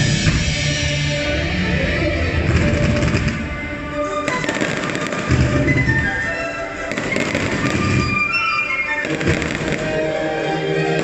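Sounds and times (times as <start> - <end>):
music: 0.0 - 11.0
firework bangs: 4.2 - 6.2, 6.8 - 10.1
firework crackling: 4.2 - 10.1.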